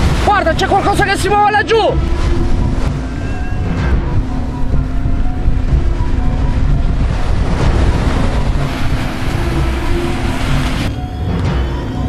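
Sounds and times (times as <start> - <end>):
wind buffeting microphone: 0.0 - 11.8.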